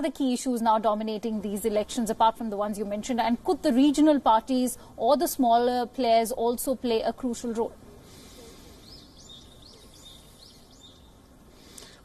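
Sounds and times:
faint outdoor background noise: 0.0 - 12.0
bird rising chirp: 8.7 - 11.4.

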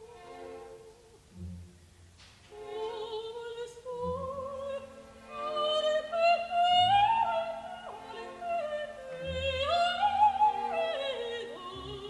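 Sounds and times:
orchestra: 0.0 - 12.0
operatic soprano singing: 2.5 - 12.0.

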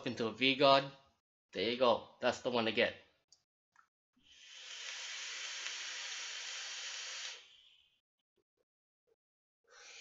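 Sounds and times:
hiss of air through vape coil: 4.3 - 7.6.

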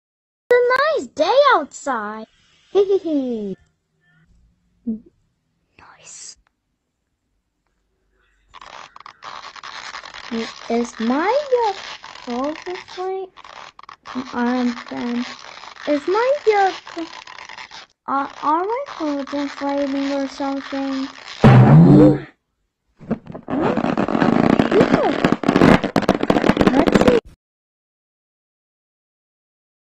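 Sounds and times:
harsh crackling distortion: 8.2 - 22.3, 23.0 - 27.3
cartoon inflation hiss: 8.6 - 22.2.

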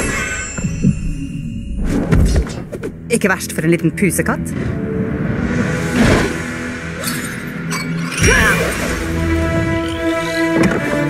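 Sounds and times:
high ringing tone: 0.0 - 1.9
dark action music: 0.0 - 11.0.

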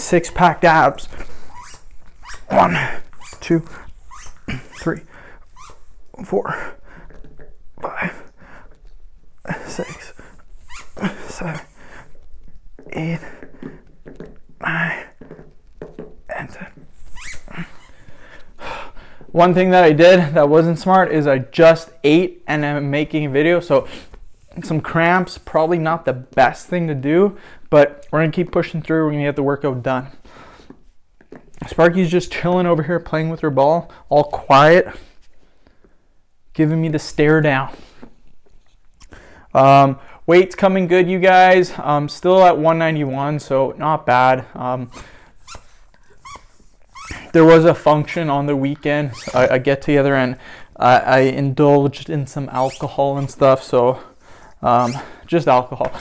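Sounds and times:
rubber ball squeaks: 1.0 - 6.0, 9.5 - 11.6, 12.8 - 18.1, 44.9 - 47.3, 49.0 - 49.5, 54.8 - 55.2.

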